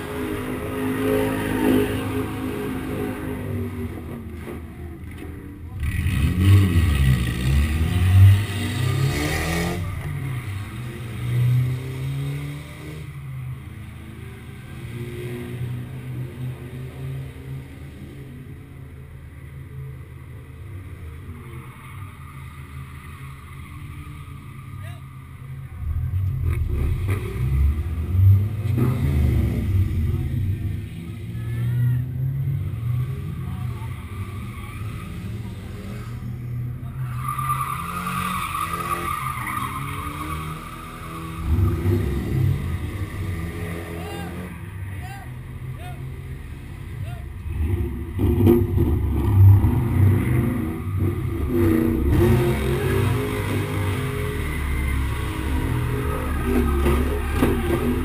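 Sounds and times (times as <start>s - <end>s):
car engines idling and revving: 0.0s - 58.0s
tyre squeal: 36.9s - 42.3s.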